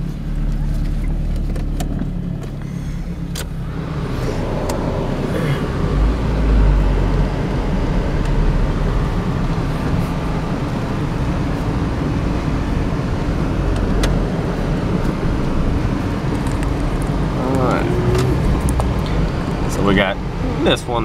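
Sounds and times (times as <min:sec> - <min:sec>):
car engine and road noise: 0:00.0 - 0:21.0.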